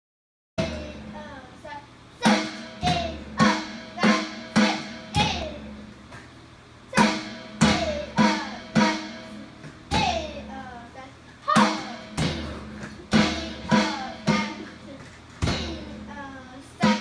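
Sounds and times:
electronic drum kit hits: 0.6s - 1.2s, 2.2s - 6.1s, 6.9s - 10.6s, 11.5s - 16.1s
song with singing: 11.5s - 16.1s.

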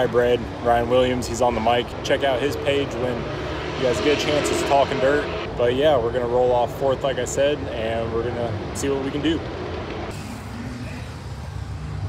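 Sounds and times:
engines rumbling: 0.0s - 12.0s.

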